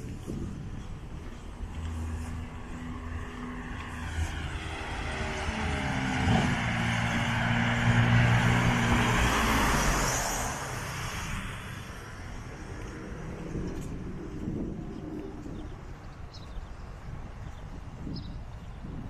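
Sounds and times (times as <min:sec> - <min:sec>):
car passing: 0:00.3 - 0:16.8.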